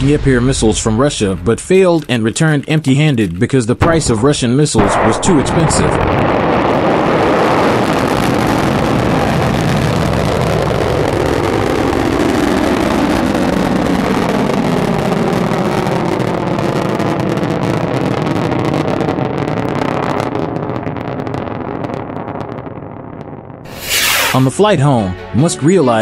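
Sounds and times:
rocket engines rumbling: 0.0 - 18.2, 23.7 - 24.6.

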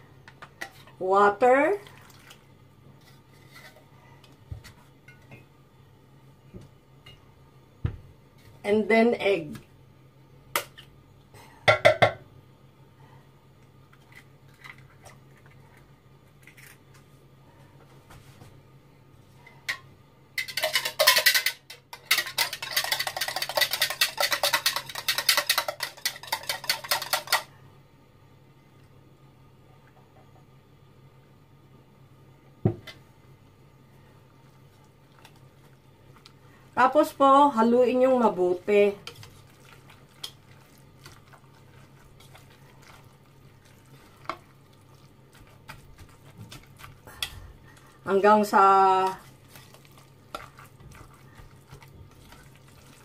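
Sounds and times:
low steady hum: 0.0 - 53.0
whisk rattling in plastic jug: 20.4 - 27.4.

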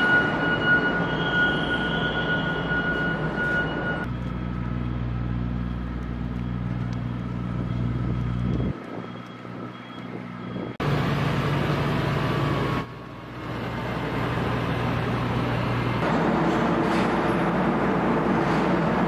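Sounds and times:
forklift engine running: 2.6 - 19.0.

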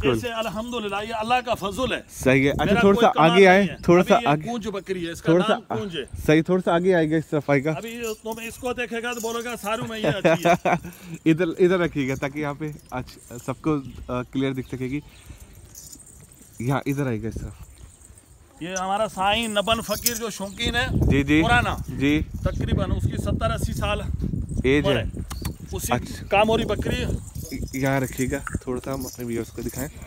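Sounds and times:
man calling out: 0.0 - 1.2, 24.6 - 25.1
collar bells jingling: 0.0 - 30.0.

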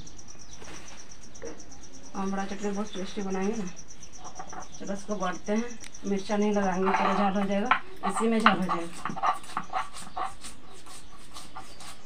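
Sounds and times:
stone scraping on stone: 4.2 - 4.8, 6.3 - 12.0.

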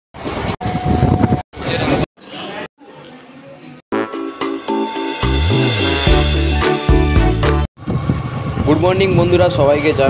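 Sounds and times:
steady tone: 3.9 - 7.2.

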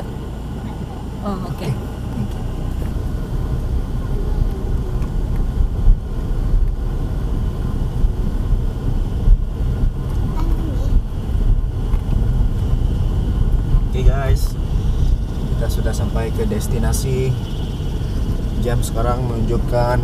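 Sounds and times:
engine and tyres rumbling: 0.0 - 20.0.

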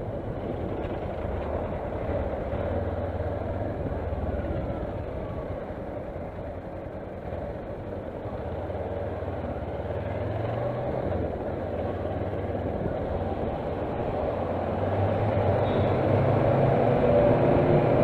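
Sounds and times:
road and wind noise: 0.0 - 18.0.

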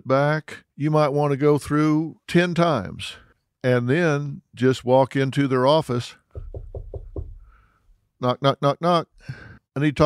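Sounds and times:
knuckles knocking on door: 6.3 - 7.5.

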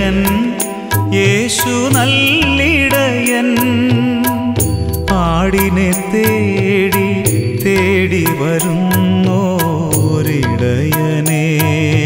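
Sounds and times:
devotional song with percussion: 0.0 - 12.0.

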